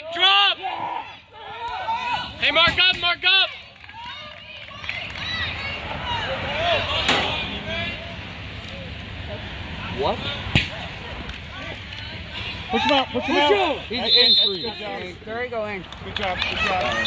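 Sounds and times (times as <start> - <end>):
players and onlookers shouting: 0.0 - 8.1, 10.4 - 15.2.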